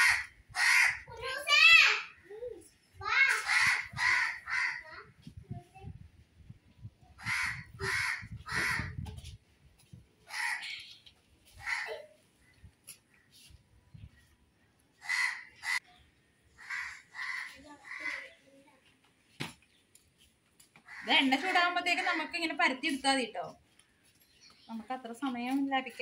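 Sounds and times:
crows cawing: 0.0s - 1.1s, 3.2s - 4.8s, 7.2s - 9.0s, 10.3s - 10.9s, 11.6s - 12.0s, 15.0s - 15.9s, 16.6s - 18.4s, 20.8s - 22.2s.

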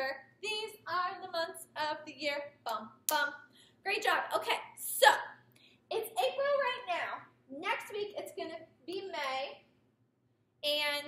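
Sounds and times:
woman talking: 0.0s - 9.6s, 10.6s - 11.0s.

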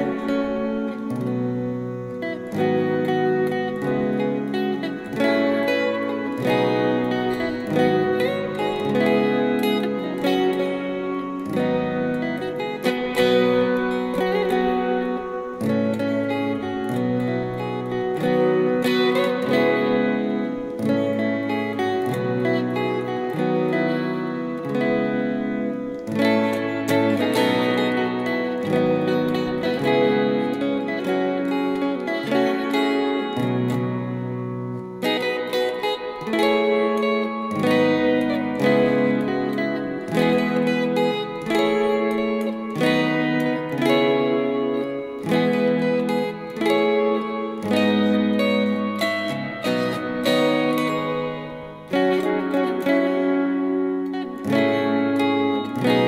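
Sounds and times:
electric guitar chords and melody: 0.0s - 56.0s.

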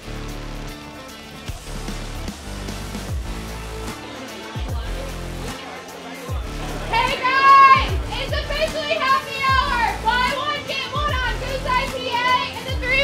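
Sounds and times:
woman's excited high-pitched voice: 6.9s - 13.0s.

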